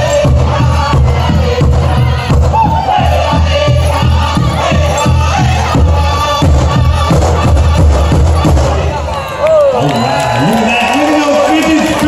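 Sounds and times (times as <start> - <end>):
group singing in high voices: 0.0 - 9.4.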